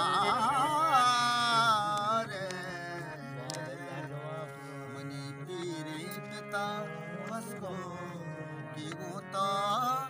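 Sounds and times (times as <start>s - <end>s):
folk music drone and melody: 0.0s - 10.0s.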